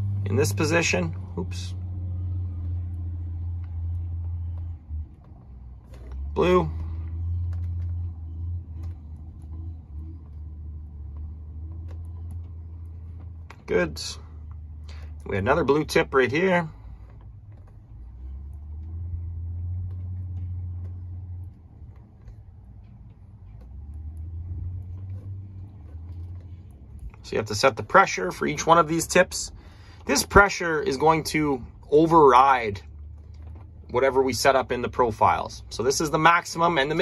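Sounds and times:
engine idling low hum: 0:00.0 - 0:37.0.

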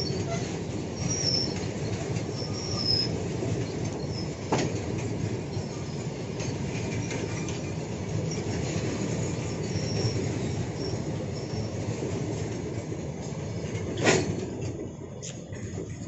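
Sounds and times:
high wheel squeals: 0:00.0 - 0:04.6, 0:05.5 - 0:12.0
freight wagons rolling on rails: 0:00.0 - 0:16.0.

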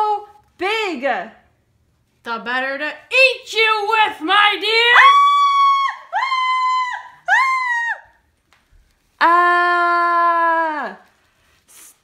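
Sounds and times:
woman screaming: 0:04.8 - 0:08.2.

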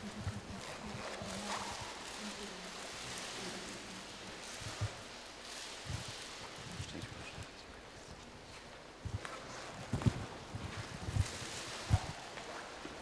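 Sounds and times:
faint rustling and shuffling: 0:00.0 - 0:13.0
steady hiss: 0:00.0 - 0:13.0.

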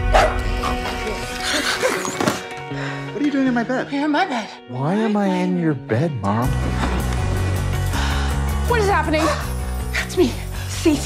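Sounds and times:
dog barking: 0:00.0 - 0:00.8
background music: 0:00.0 - 0:11.0.

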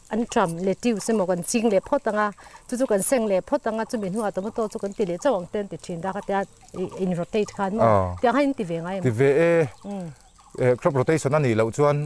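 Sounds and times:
man talking: 0:07.8 - 0:08.2, 0:09.1 - 0:09.8, 0:10.6 - 0:12.0.

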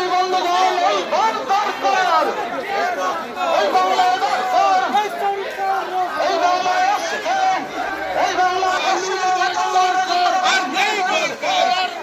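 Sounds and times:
crowd shouting and chanting: 0:00.0 - 0:12.0.

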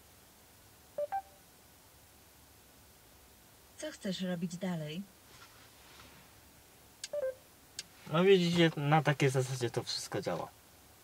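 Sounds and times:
two-tone electronic beeps: 0:01.0 - 0:01.4, 0:07.1 - 0:07.4.

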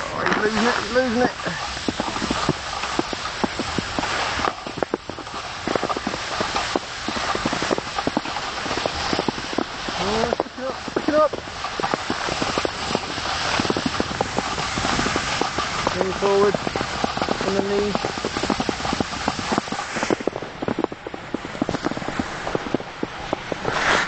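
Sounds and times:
footsteps crunching through snow: 0:00.0 - 0:24.0.

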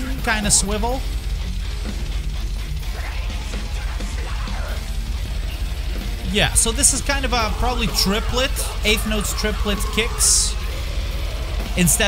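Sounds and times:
electronic drum kit playing: 0:00.0 - 0:12.0
fast death metal song: 0:00.0 - 0:12.0.

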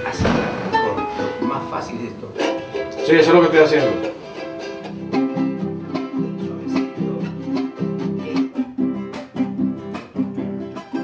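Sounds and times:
acoustic guitar strumming: 0:00.0 - 0:11.0
charango: 0:00.0 - 0:11.0.

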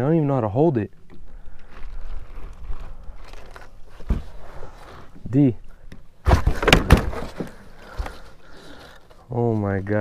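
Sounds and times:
dull thump: 0:06.2 - 0:07.6.

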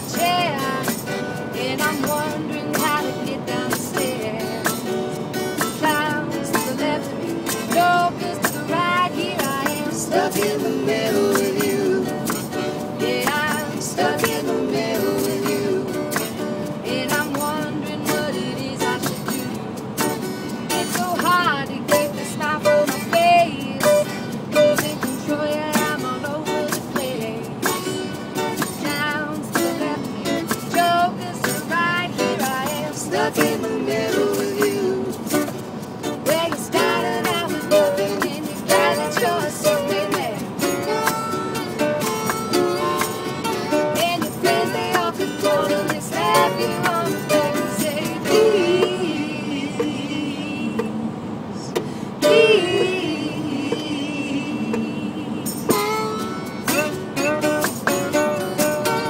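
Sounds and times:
person singing: 0:00.0 - 0:04.6, 0:05.8 - 0:19.6, 0:20.7 - 0:27.7, 0:28.6 - 0:35.3, 0:36.2 - 0:59.0
hand percussion: 0:00.0 - 0:50.0, 0:51.7 - 0:59.0
strummed acoustic guitar: 0:00.0 - 0:59.0.

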